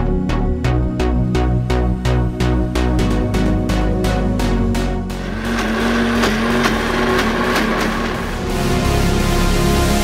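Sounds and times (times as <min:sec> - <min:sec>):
background music with a beat: 0:00.0 - 0:10.0
mixer grinder motor whirring: 0:05.1 - 0:08.6.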